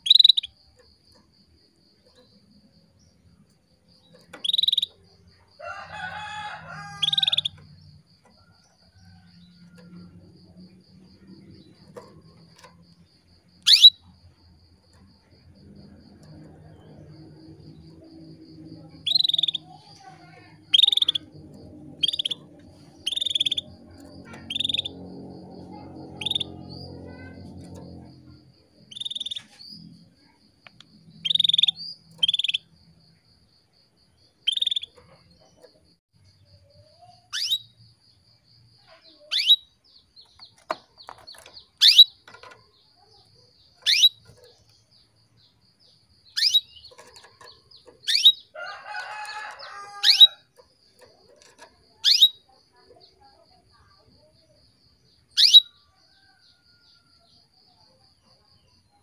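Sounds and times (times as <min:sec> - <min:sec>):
canary chirping: 0:00.0 - 0:30.4, 0:31.1 - 0:32.7, 0:34.4 - 0:35.9, 0:37.0 - 0:37.8, 0:38.9 - 0:54.3, 0:55.2 - 0:56.2.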